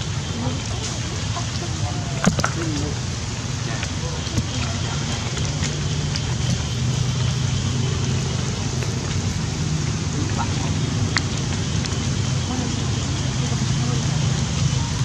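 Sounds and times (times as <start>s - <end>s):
low steady hum: 0.0s - 15.0s
steady rain hiss: 0.0s - 15.0s.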